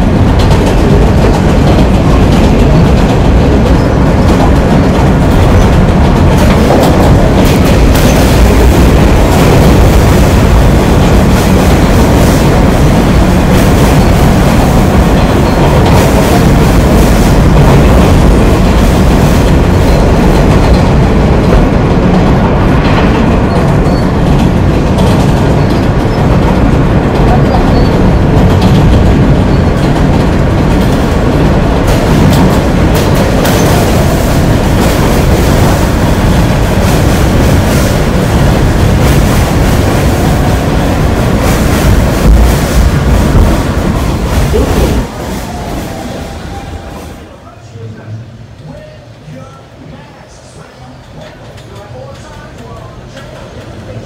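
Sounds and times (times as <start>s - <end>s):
subway train on rails: 0.0s - 54.0s.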